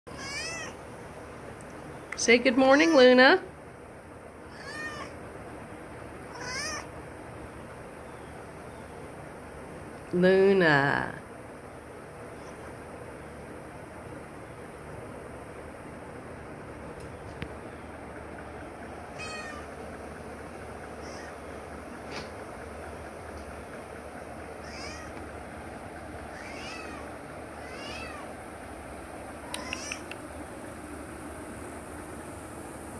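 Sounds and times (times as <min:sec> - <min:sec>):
cat meowing: 0:00.1 - 0:00.8, 0:04.5 - 0:05.2, 0:06.3 - 0:06.9, 0:19.2 - 0:19.7, 0:21.0 - 0:21.4, 0:24.6 - 0:25.2, 0:26.3 - 0:28.4, 0:29.4 - 0:30.2
sharp clicks: 0:29.5 - 0:30.3.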